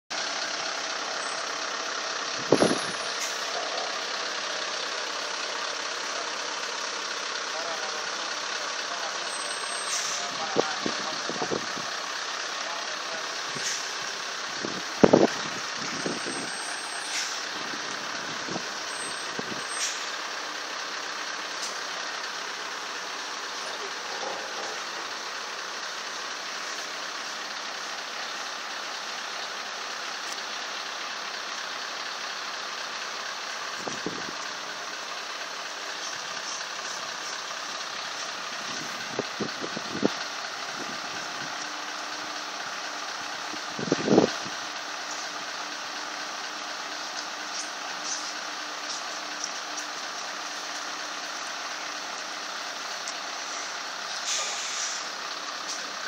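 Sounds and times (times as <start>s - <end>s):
heavy truck engines running: 0.1s - 56.0s.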